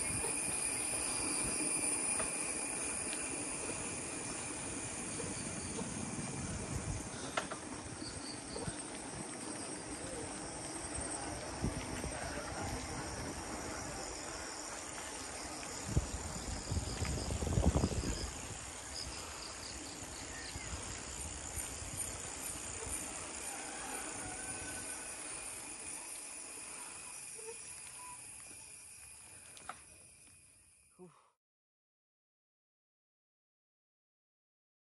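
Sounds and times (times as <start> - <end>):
insects chirring: 0.0 - 31.2.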